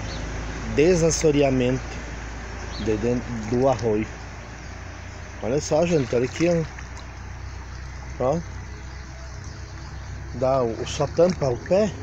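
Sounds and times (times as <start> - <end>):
creek water over stones: 0.0 - 12.0
low steady rumble: 0.0 - 12.0.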